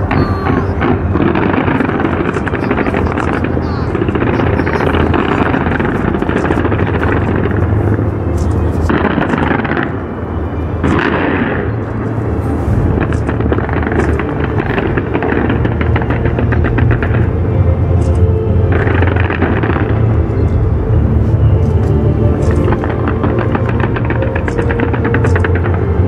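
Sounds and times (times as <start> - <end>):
fireworks booming and crackling: 0.0 - 26.0.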